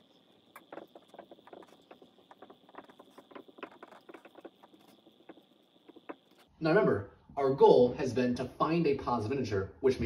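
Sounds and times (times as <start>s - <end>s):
marker writing on whiteboard: 0.0s - 6.5s.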